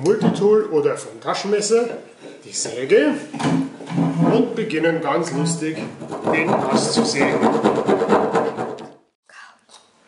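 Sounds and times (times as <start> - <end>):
saw rasping through wood: 5.8 - 8.9.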